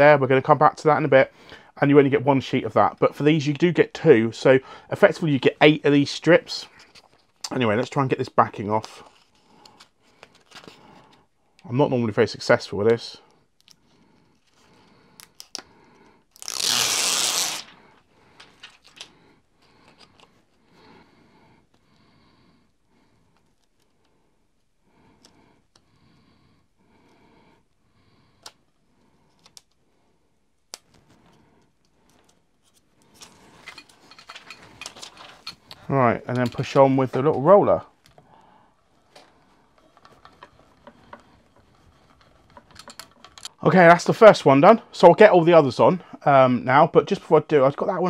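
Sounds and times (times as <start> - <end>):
backing paper tearing off: 16.4 - 17.8.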